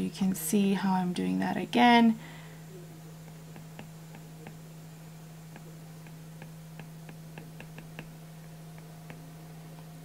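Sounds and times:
steady low hum: 0.0s - 10.0s
stylus tapping on glass screen: 3.2s - 4.6s, 5.5s - 9.2s.

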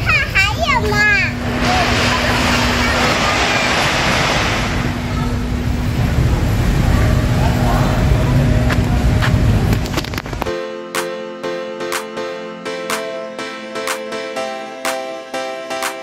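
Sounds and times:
people talking: 0.0s - 9.6s
steady traffic noise: 0.0s - 10.5s
wind rumbling on microphone: 1.3s - 10.5s.

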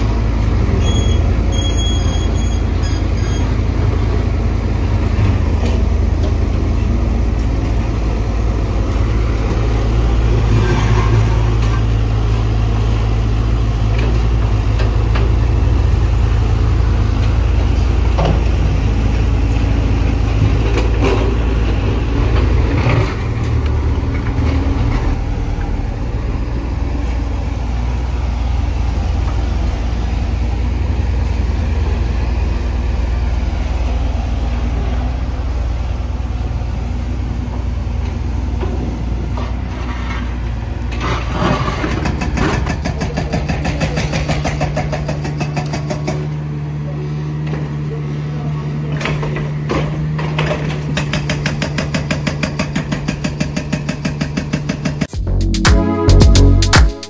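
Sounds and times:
excavator diesel engine running: 0.0s - 56.8s.

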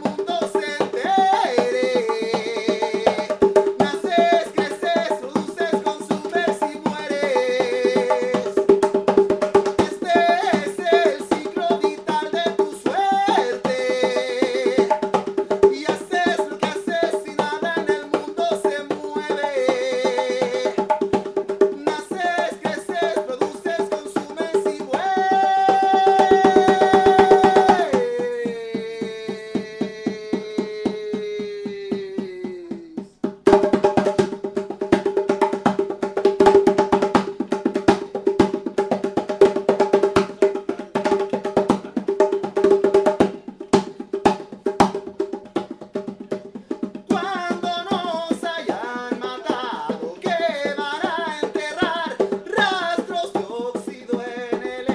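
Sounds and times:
hand drum strokes: 22.2s - 53.8s.

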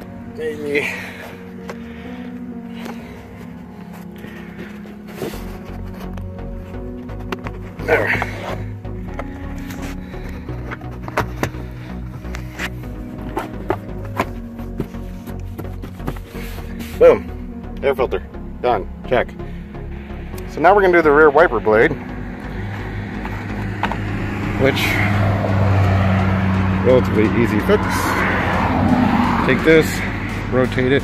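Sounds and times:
background music with held tones: 0.0s - 31.0s
steady low beat: 5.0s - 31.0s.

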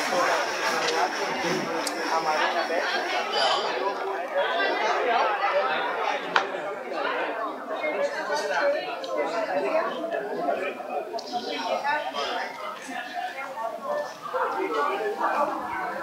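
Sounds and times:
people talking at once: 0.0s - 16.0s.

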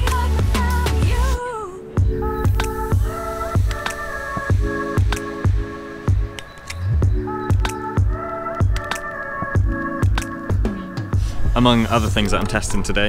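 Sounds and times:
background music with held chords: 0.0s - 13.0s.

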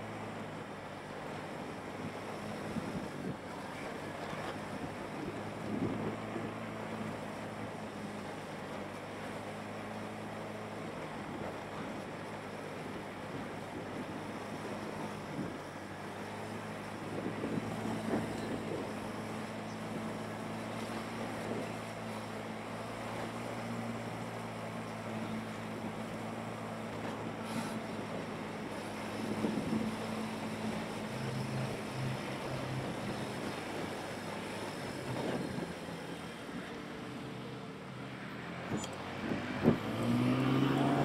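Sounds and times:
wind rushing over microphone: 38.6s - 41.0s.

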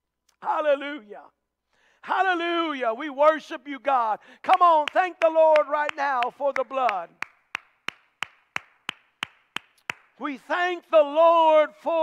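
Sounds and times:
person clapping hands: 4.8s - 10.2s.

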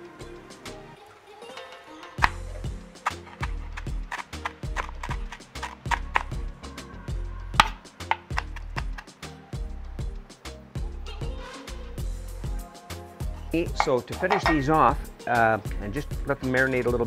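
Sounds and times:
background music with bass line: 2.2s - 17.0s
knife chopping on cutting board: 3.0s - 6.4s, 7.6s - 9.0s.

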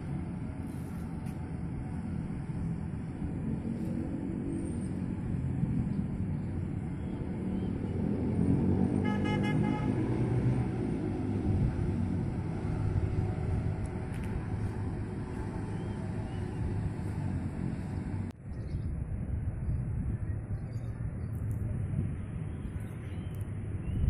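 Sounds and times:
motor traffic rumble: 0.0s - 24.0s
vehicle horn toot: 9.0s - 10.2s.

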